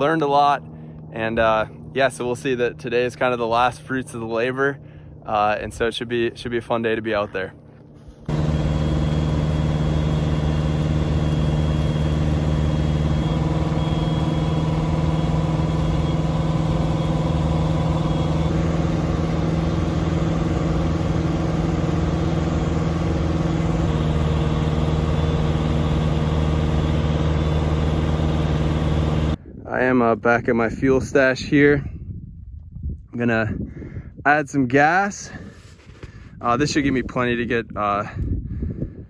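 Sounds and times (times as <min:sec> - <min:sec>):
airplane engine droning: 0:00.0 - 0:29.6.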